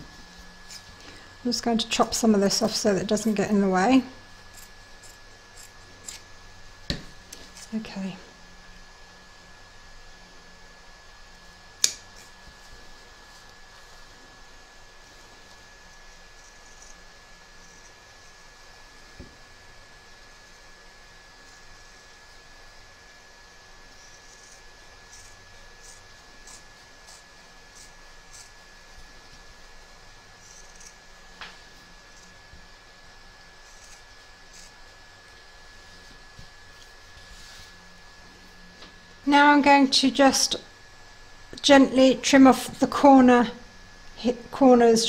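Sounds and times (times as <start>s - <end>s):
scissors snipping fabric: 24.1s - 28.6s.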